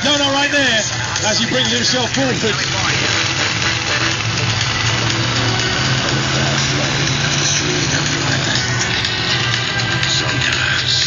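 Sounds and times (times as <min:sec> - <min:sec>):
monster truck engine running: 0:00.0 - 0:11.0.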